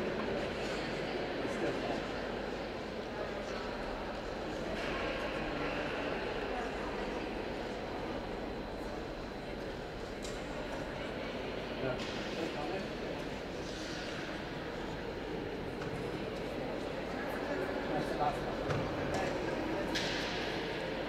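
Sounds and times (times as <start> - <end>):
murmur of voices echoing: 0.0 - 21.0
steady hall hum: 0.0 - 21.0.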